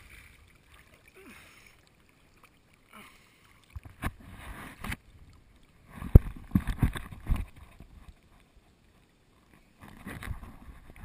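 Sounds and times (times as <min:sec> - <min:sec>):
pool water splashing: 0:00.0 - 0:06.2.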